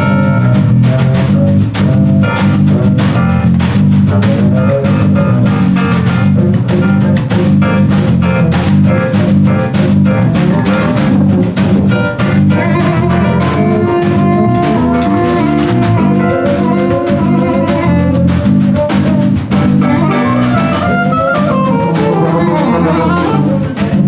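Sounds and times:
drum kit: 0:00.0 - 0:24.0
electric keyboard played fast: 0:00.0 - 0:24.0
steady bass line: 0:00.0 - 0:24.0.

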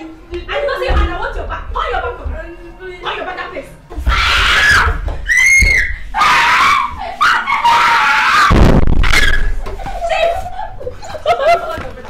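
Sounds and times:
boys screaming and wailing: 0:04.0 - 0:11.0
cane strikes: 0:08.3 - 0:10.0
heavy thump: 0:08.5 - 0:09.8.

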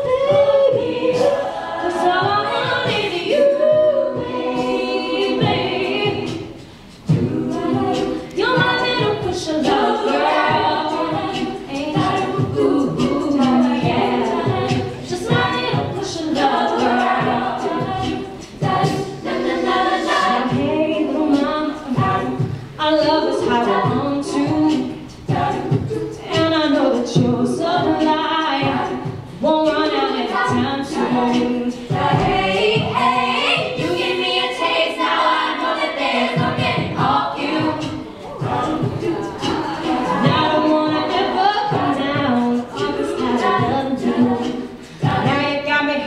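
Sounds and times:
female a cappella group singing: 0:00.0 - 0:46.0
low rhythmic beat: 0:00.0 - 0:46.0.

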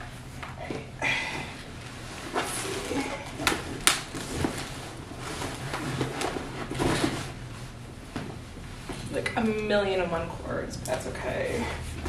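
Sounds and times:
rustling and knocks of packing: 0:02.2 - 0:09.2.

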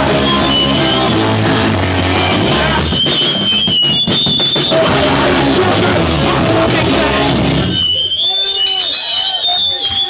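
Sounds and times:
guitar feedback whine: 0:00.0 - 0:08.0
punk band playing: 0:00.0 - 0:08.2.

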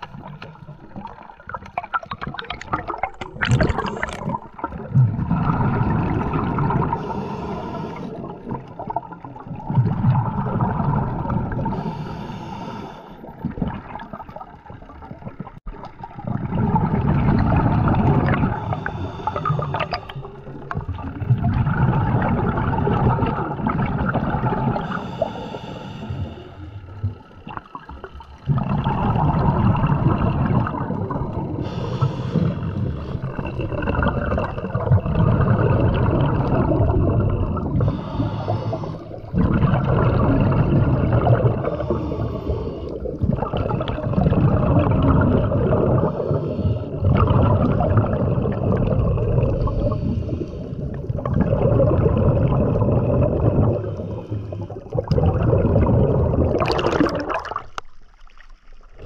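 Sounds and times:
muffled underwater water noise: 0:00.0 - 0:59.0.

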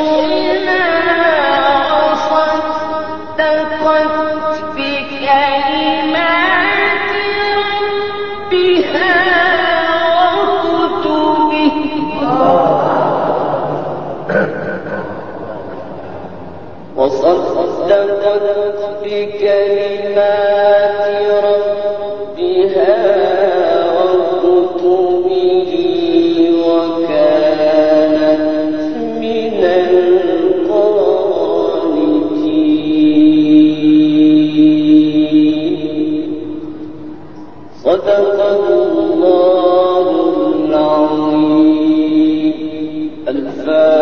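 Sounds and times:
man chanting recitation: 0:00.0 - 0:36.8, 0:37.7 - 0:44.0.

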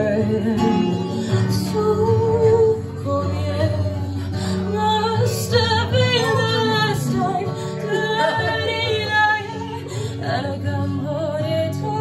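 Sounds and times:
strummed guitar: 0:00.0 - 0:12.0
woman singing: 0:00.0 - 0:12.0.

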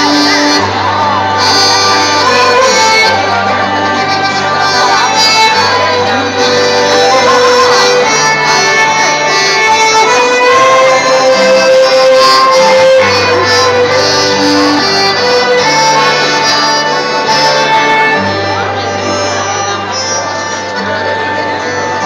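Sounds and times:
accordion: 0:00.0 - 0:22.0
guitar: 0:00.0 - 0:22.0.

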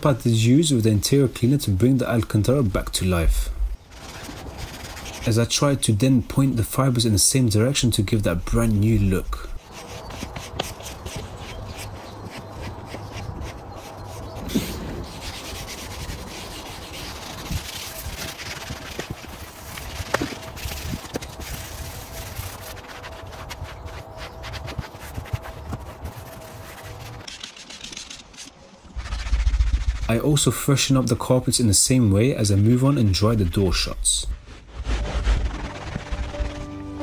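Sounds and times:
scrub pad scrubbing upholstery: 0:03.9 - 0:05.3, 0:09.6 - 0:28.2.

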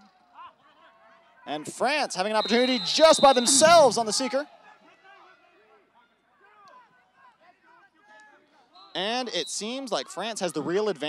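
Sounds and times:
distant voices calling out: 0:02.4 - 0:04.3.

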